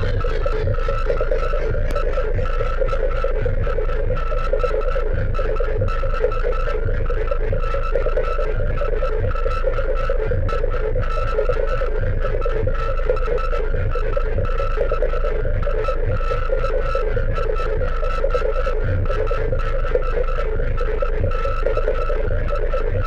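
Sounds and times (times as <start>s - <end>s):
dense synth tone: 0.0s - 23.0s
low synth drone: 0.0s - 23.0s.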